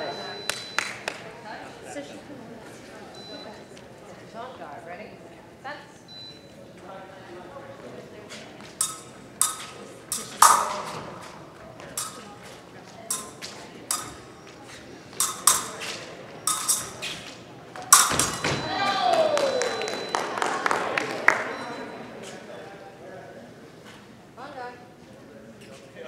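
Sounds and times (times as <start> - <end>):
fencing blades clashing: 8.8 - 18.8.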